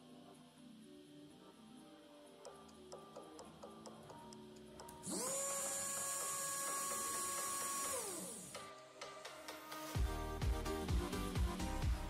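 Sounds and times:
electric motor whining: 0:05.0 - 0:08.7.

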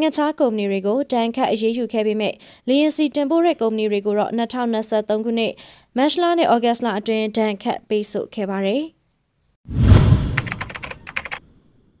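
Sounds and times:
low boom: 0:09.7 - 0:10.6.

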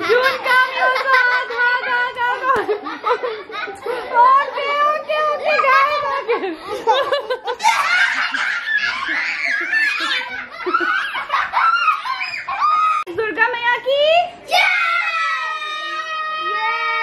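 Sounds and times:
children laughing and chattering: 0:00.0 - 0:17.0.

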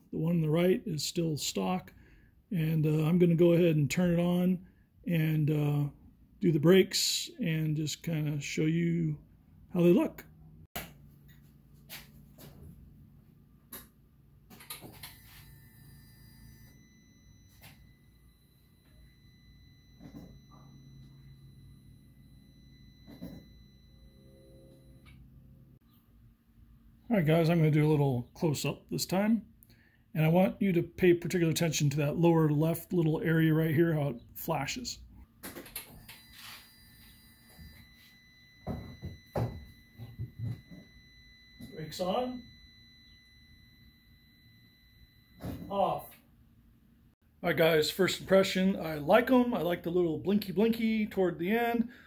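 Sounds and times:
high-pitched electronic tone: 0:15.0 - 0:25.2, 0:36.0 - 0:45.8
low hum: 0:15.1 - 0:27.1, 0:37.2 - 0:45.7.

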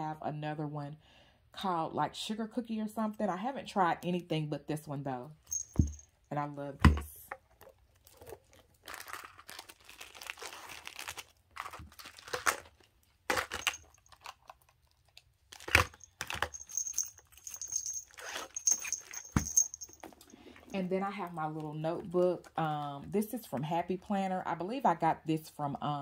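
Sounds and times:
plastic pouch crinkling: 0:07.6 - 0:20.3
toiletries being handled: 0:15.8 - 0:20.4
sharp knocks of items set down: 0:18.6 - 0:20.2.

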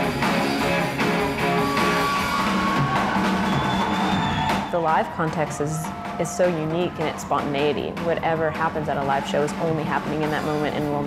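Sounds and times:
drum kit beat: 0:00.0 - 0:11.0
rock band music: 0:00.0 - 0:11.0.

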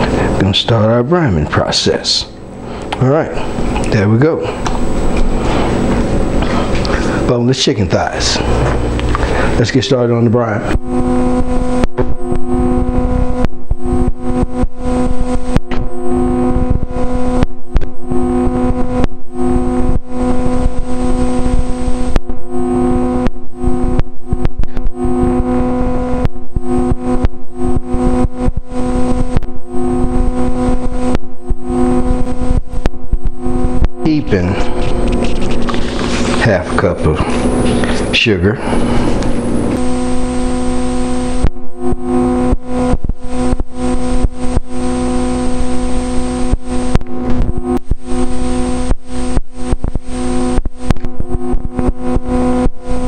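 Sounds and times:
loud electronic buzz: 0:00.0 - 0:53.0
voice: 0:00.4 - 0:02.4, 0:03.0 - 0:04.6, 0:07.2 - 0:08.8, 0:09.6 - 0:10.8, 0:34.0 - 0:34.8, 0:36.4 - 0:38.7.

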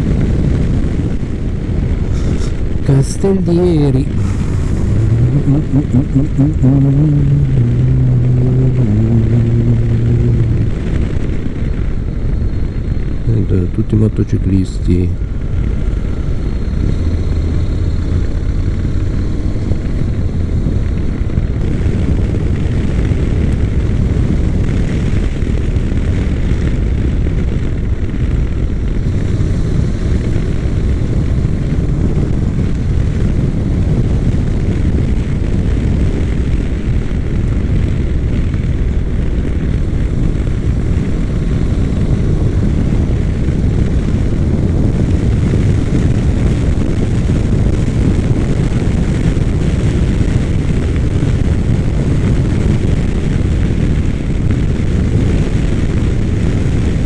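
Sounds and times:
motorcycle engine running: 0:00.0 - 0:13.2, 0:15.0 - 0:57.0
wind rumble on microphone: 0:00.0 - 0:57.0.

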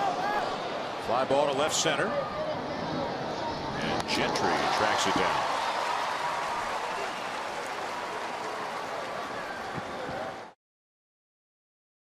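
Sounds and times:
stadium crowd din: 0:00.0 - 0:10.6.

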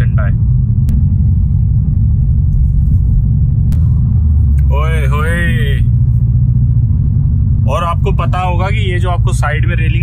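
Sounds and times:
car cabin road and engine rumble: 0:00.0 - 0:10.0.

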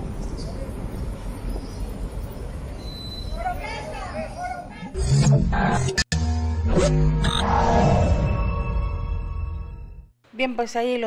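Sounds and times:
street ambience low rumble: 0:00.0 - 0:06.0.

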